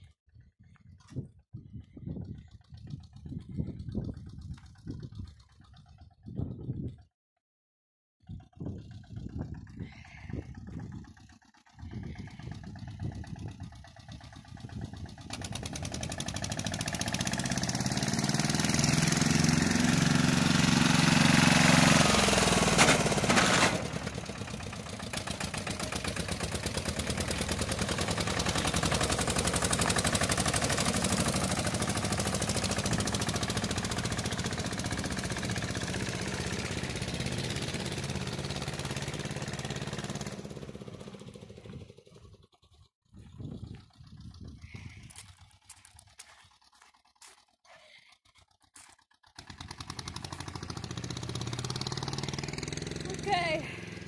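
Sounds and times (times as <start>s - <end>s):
tractor engine passing fast: 1.6s - 7.0s, 8.2s - 54.0s.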